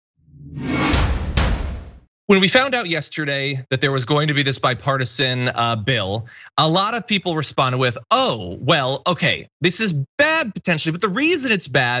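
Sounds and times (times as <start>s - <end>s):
whoosh effect: 0.3s - 2.0s
sharp swishes: 0.5s - 1.8s.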